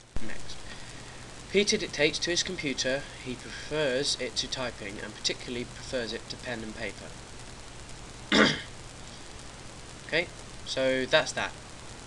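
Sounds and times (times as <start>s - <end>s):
person clearing throat: 8.3s - 8.7s.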